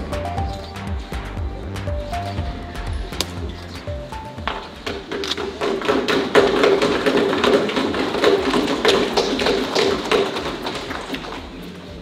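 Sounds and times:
hands thumping on wooden desks: 4.3s - 11.5s.

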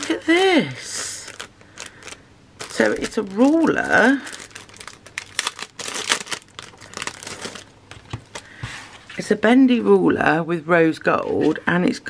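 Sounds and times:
plastic packaging crinkling: 0.0s - 8.5s.

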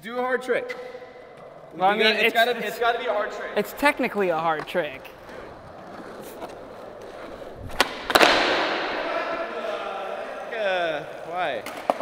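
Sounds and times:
skateboard wheels rolling on concrete: 0.6s - 12.0s.

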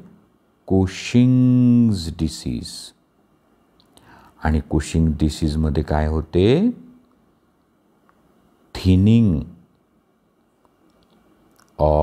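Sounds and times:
man speaking: 0.7s - 3.0s, 4.4s - 7.0s, 8.7s - 9.6s, 11.8s - 12.0s.

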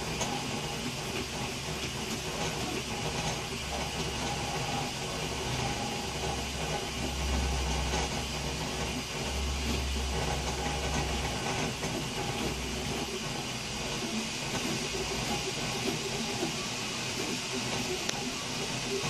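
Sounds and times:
printer stepper motors humming: 0.0s - 19.0s.

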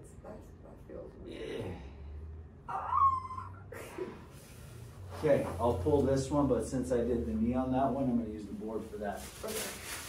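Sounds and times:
woman squealing: 2.7s - 3.9s.

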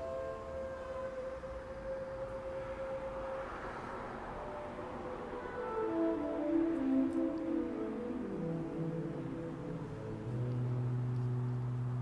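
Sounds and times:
saxophone long note: 0.0s - 12.0s.

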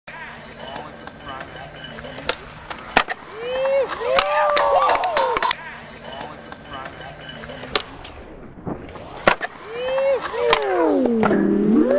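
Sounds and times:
skateboard wheels rolling on concrete: 0.6s - 11.9s.

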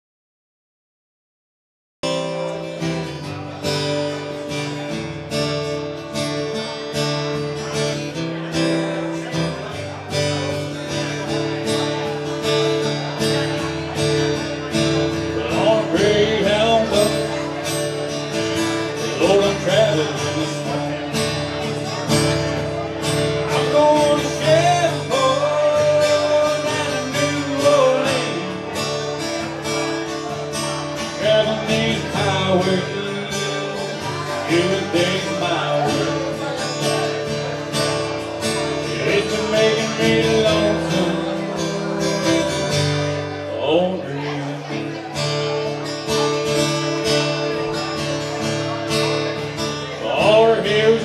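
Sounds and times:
acoustic guitar strumming: 2.0s - 51.0s.

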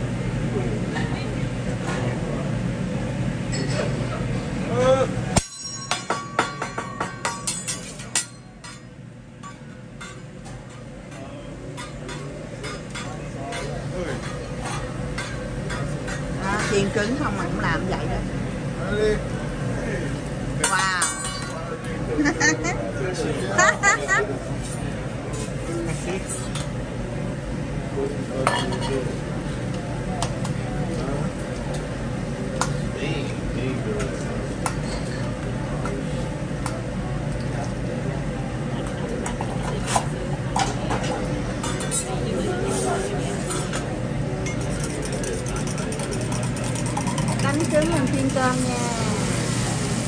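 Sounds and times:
metal spatula clinking on griddle: 5.4s - 16.7s, 20.6s - 21.6s.

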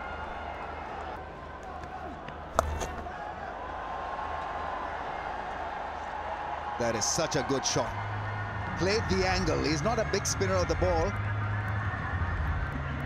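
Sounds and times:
stadium crowd noise: 0.0s - 13.0s
bat hitting ball: 1.8s - 3.1s.

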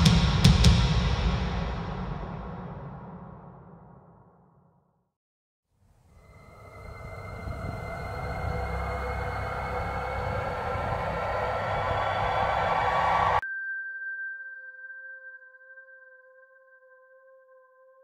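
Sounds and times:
faint steady tones: 6.1s - 13.4s
noise riser with low rumble: 6.2s - 13.4s.

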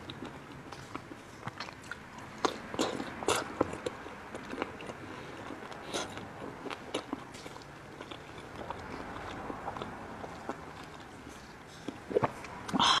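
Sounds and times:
chewing raw squid: 0.0s - 12.9s
wet mouth sounds: 0.0s - 13.0s.

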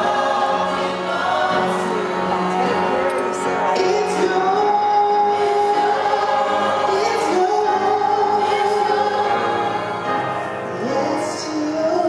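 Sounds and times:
choir singing in harmony: 0.0s - 12.0s.

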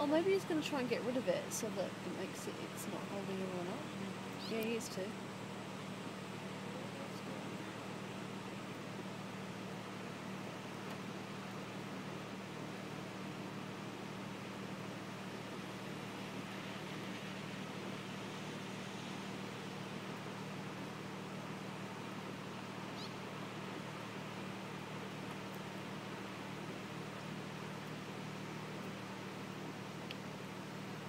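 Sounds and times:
low steady hum: 0.0s - 31.0s
rain and floodwater rushing: 0.0s - 31.0s.

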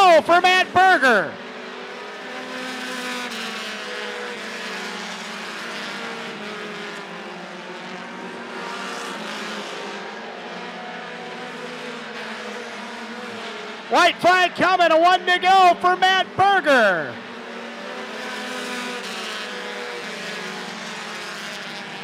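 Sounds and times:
stock car engines droning: 0.0s - 22.0s.

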